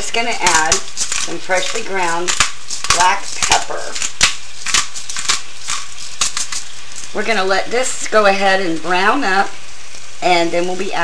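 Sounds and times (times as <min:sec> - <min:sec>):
meat sizzling in a pan: 0:00.0 - 0:11.0.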